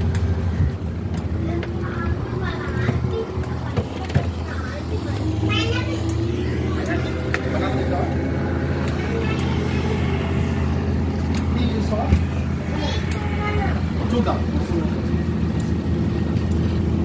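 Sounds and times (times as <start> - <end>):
boat engine droning: 0.0 - 17.0
people's voices: 0.2 - 17.0.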